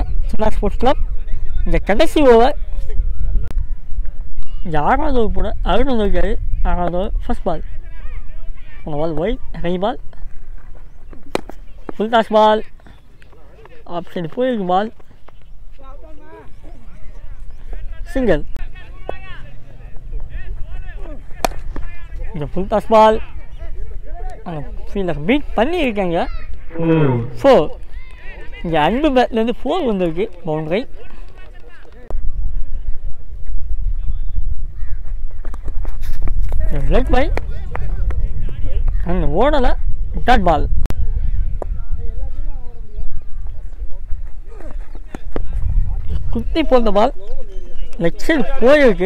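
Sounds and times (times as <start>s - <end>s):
wind rumble on microphone: 0.0s - 12.0s, 14.9s - 49.0s
players' voices: 0.0s - 49.0s
faint voices: 10.2s - 29.0s
cricket bat striking ball: 11.2s - 11.6s, 21.4s - 21.9s
commentary: 15.8s - 32.1s.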